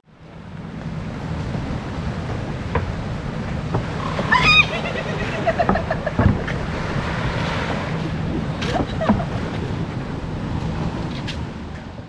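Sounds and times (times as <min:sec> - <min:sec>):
surf at shore: 0:00.0 - 0:12.0
wind on microphone: 0:00.1 - 0:12.0.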